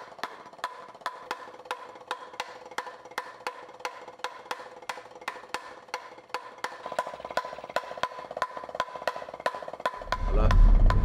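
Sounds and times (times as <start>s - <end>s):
drumsticks on practice pad: 0.0s - 11.0s.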